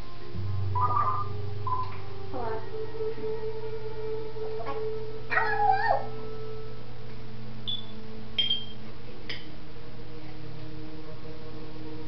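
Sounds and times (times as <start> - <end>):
high chirps: 0.7 - 2.0, 7.7 - 8.8
parrot call: 0.8 - 1.9.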